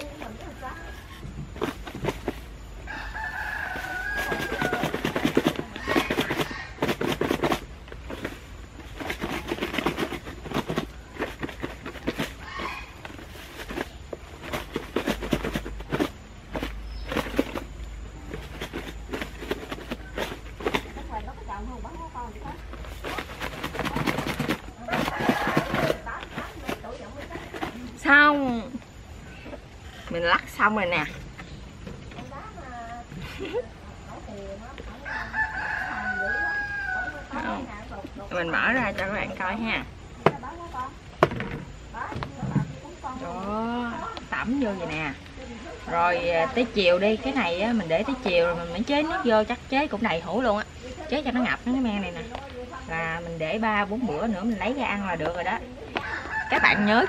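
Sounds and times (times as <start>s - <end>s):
rooster crowing: 2.8s - 7.0s, 12.4s - 13.0s, 24.8s - 26.2s, 35.0s - 37.7s, 55.9s - 57.0s
pods rattling in plastic box: 22.6s - 27.8s.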